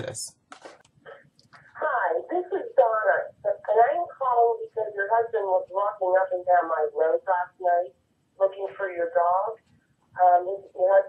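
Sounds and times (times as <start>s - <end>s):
woman speaking through phone speaker: 1.7s - 9.6s, 10.2s - 11.0s.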